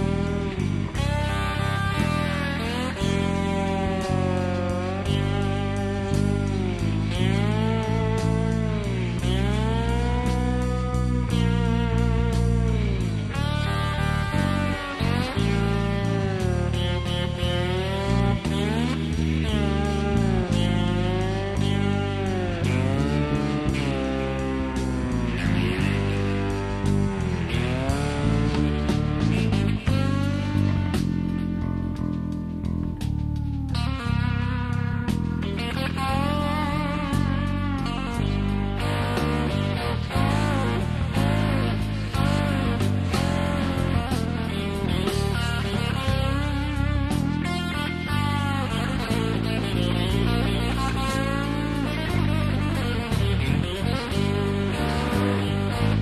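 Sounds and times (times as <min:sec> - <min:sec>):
bass and drums: 0:00.0 - 0:56.0
lead guitar bending notes: 0:00.0 - 0:56.0.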